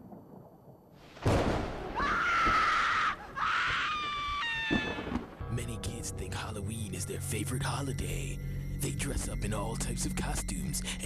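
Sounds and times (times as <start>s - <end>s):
long high cry: 2.0s - 5.1s.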